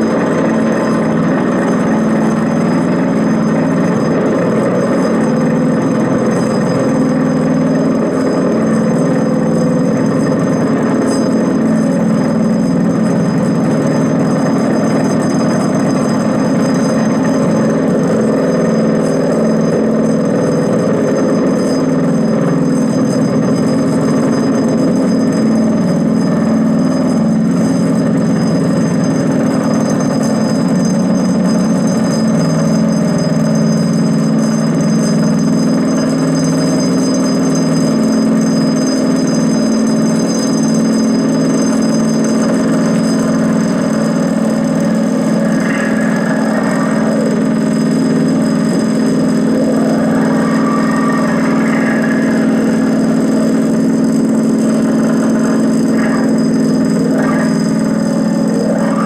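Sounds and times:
low drone: 0.0s - 59.0s
thin high tones: 0.0s - 59.0s.

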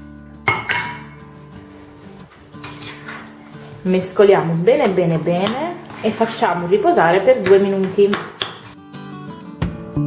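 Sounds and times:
soft background music: 0.0s - 10.0s
spoon clinking against ceramic bowl: 0.5s - 1.2s.

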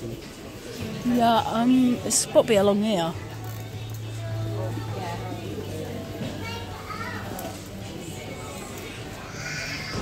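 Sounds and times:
background music: 0.5s - 10.0s.

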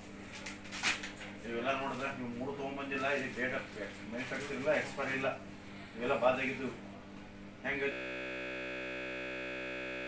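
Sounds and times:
steady electronic drone: 7.9s - 10.0s.

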